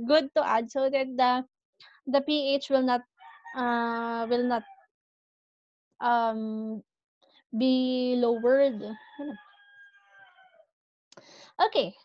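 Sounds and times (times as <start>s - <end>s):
woman's voice: 0.0s - 1.4s, 2.1s - 3.0s, 3.6s - 4.6s, 6.0s - 6.8s, 7.6s - 9.4s, 11.3s - 12.0s
rooster crowing: 3.2s - 3.6s, 4.6s - 4.9s, 8.9s - 10.7s.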